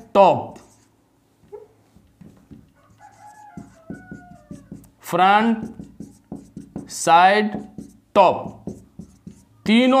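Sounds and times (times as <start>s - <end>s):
marker squeaking on whiteboard: 0.5s - 10.0s
marker tip tapping whiteboard: 2.2s - 9.4s.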